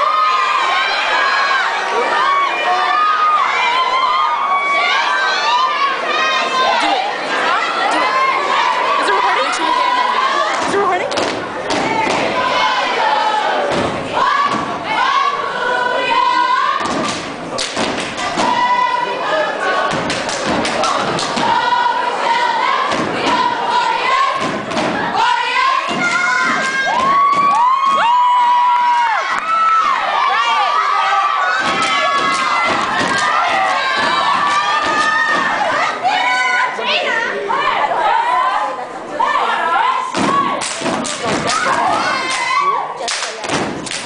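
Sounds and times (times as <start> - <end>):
people shouting and chanting: 0.0 - 44.0
stomping: 13.7 - 14.9, 22.7 - 25.3, 40.1 - 42.6
clapping in unison: 20.0 - 21.4, 40.6 - 44.0.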